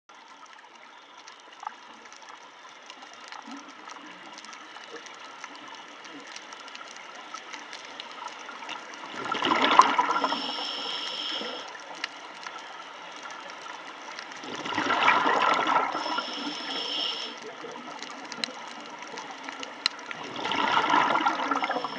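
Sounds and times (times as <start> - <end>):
faint underwater crackle of clicks: 0.1 - 21.9
diver exhaling bubbles gurgle: 9.1 - 11.7, 14.4 - 17.4, 20.1 - 21.9.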